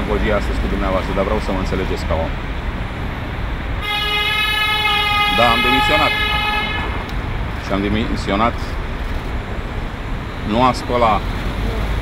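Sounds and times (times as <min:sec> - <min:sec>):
low street rumble: 0:00.0 - 0:12.0
vehicle horn long note: 0:03.8 - 0:07.1.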